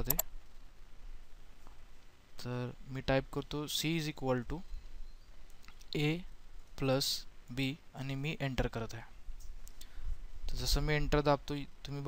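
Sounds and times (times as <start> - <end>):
computer mouse clicks: 0.0 - 0.3
person speaking: 0.0 - 0.3.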